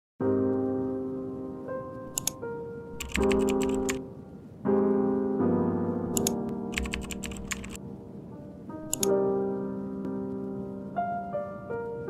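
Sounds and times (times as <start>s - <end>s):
piano notes: 0.2s - 12.0s
computer keyboard typing: 2.1s - 2.4s, 3.0s - 4.0s, 6.1s - 7.8s, 8.9s - 9.1s.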